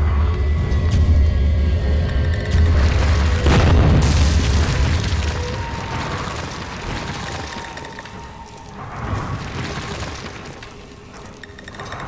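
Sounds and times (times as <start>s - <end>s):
wall smashing boom and crash: 2.8s - 8.1s.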